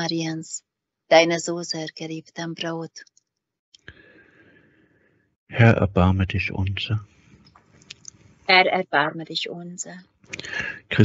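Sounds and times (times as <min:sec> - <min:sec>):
faint hiss: 0:10.3 - 0:11.0.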